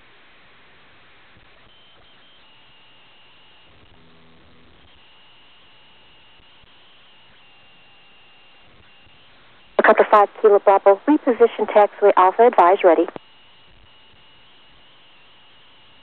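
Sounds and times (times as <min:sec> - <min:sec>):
faint hum: 0:08.5 - 0:16.0
radio receiver hiss: 0:09.8 - 0:13.2.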